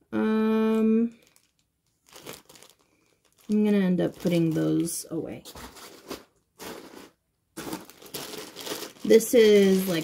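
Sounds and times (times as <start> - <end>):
plastic bag crinkling: 0.6 - 10.0.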